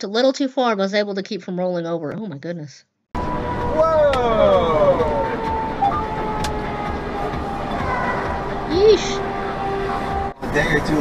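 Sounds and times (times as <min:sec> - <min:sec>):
truck road and engine noise: 0:03.1 - 0:11.0.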